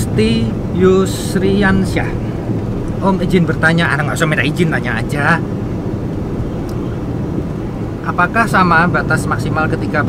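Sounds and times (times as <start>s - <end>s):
car road and engine rumble: 0.0s - 10.0s.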